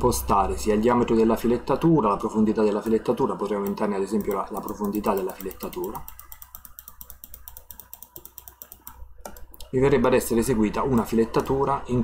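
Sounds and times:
computer mouse clicking rapidly: 0:02.5 - 0:12.0.

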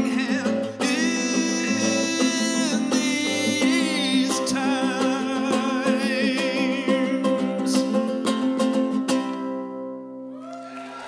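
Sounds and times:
acoustic guitar picking: 0:00.0 - 0:10.3.

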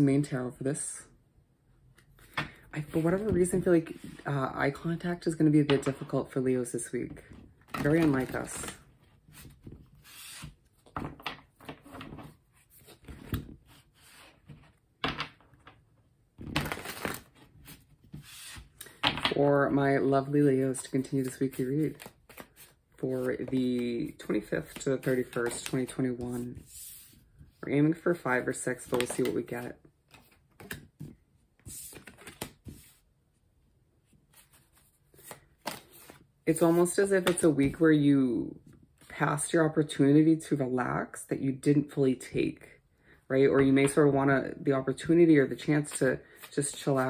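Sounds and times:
cards shuffled on a tabletop: 0:16.4 - 0:19.4, 0:21.2 - 0:27.2, 0:28.9 - 0:33.0, 0:34.3 - 0:37.8.

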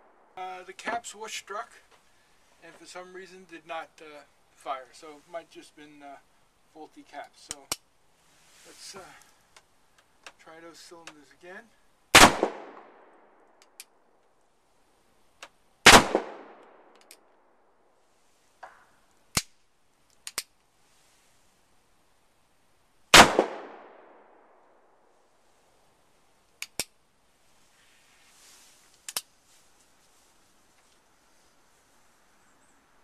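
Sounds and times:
sharp clicks: 0:07.5 - 0:07.9, 0:13.6 - 0:14.0, 0:16.6 - 0:17.2, 0:18.6 - 0:20.5, 0:26.6 - 0:27.0, 0:28.9 - 0:29.3.

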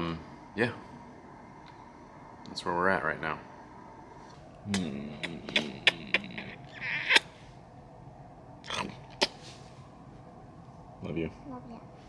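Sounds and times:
kisses lip smacks: 0:04.7 - 0:07.3.

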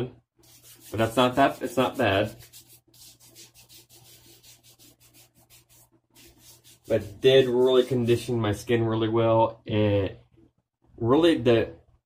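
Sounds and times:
hands rubbing together: 0:00.4 - 0:08.4.

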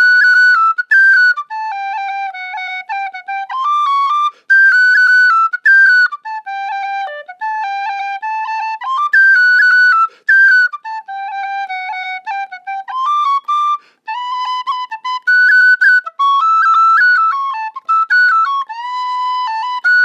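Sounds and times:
tin whistle playing a tune: 0:00.0 - 0:20.0.

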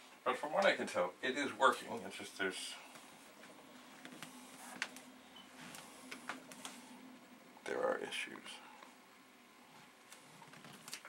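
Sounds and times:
tape drive hum: 0:00.0 - 0:11.0.

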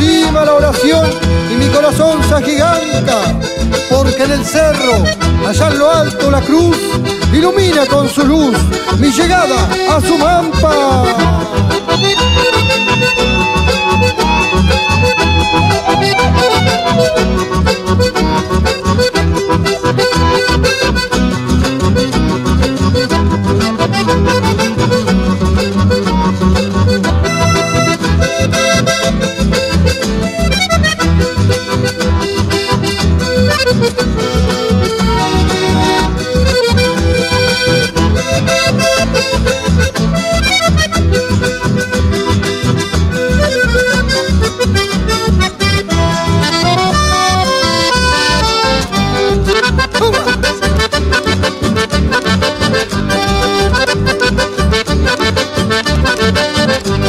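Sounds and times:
acoustic guitars: 0:00.0 - 0:57.0
button accordions playing melody: 0:00.0 - 0:57.0
steady bass pulse: 0:09.5 - 0:30.3, 0:41.0 - 0:57.0.

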